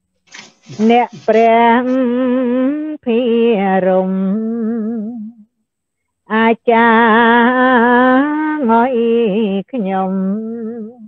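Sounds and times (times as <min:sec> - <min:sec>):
woman singing with vibrato: 0:00.8 - 0:05.5, 0:06.3 - 0:11.0.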